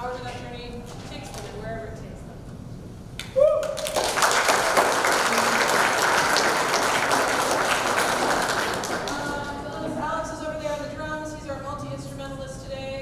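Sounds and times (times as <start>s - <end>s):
audience applauding: 3.6s - 10.3s.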